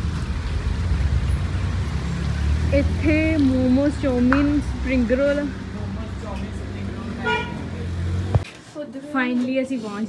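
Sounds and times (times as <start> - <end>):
car horn toot: 7.2 - 7.8.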